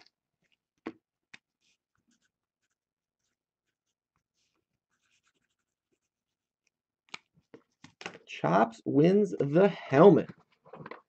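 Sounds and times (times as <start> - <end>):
marker writing on paper: 1.4 - 6.4.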